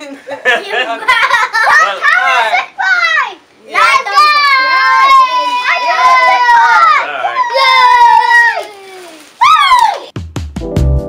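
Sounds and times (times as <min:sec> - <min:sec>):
young children shouting: 0:01.6 - 0:10.2.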